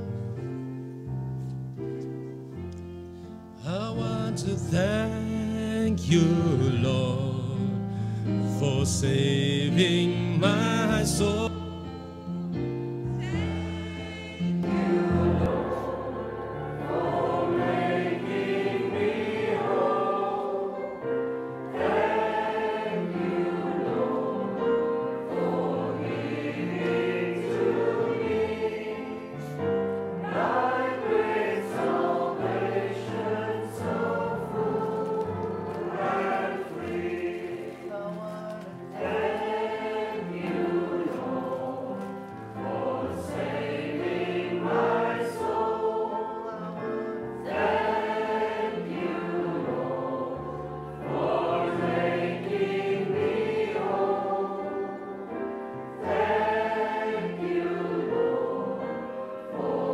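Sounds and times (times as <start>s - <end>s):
piano accompaniment: 0.0s - 59.9s
voices singing a hymn: 2.5s - 59.9s.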